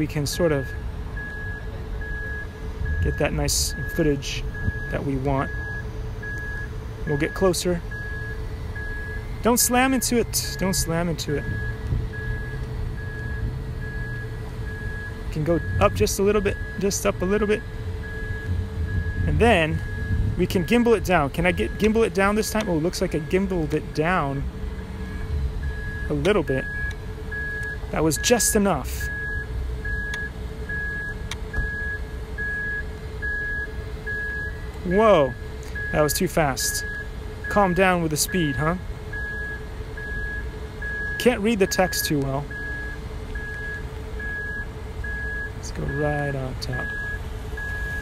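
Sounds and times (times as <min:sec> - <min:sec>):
low hum and rumble: 0:00.0 - 0:48.0
high-pitched warning beeps: 0:00.4 - 0:24.4, 0:25.0 - 0:48.0.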